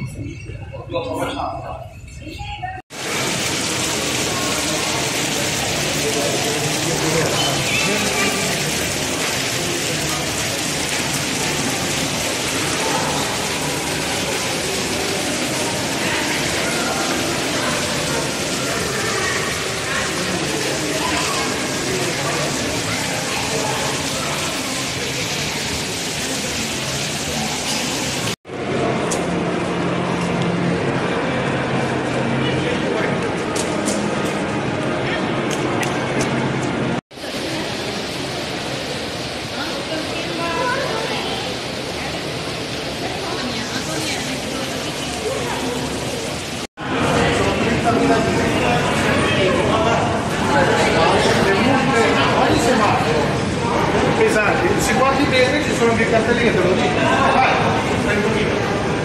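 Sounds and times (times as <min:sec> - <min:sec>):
crowd chatter: 0:00.0 - 0:59.0
fountain water splashing: 0:02.9 - 0:59.0.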